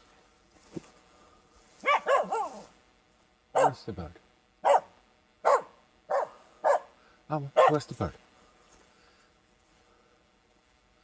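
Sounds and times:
dog barking sharply: 1.8s - 2.6s, 3.6s - 3.8s, 4.6s - 6.9s, 7.6s - 7.9s.

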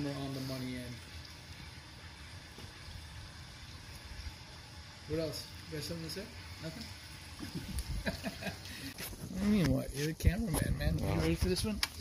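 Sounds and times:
even hiss: 0.0s - 12.0s.

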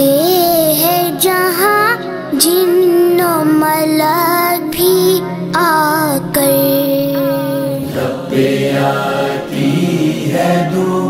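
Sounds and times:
boy singing: 0.0s - 7.9s.

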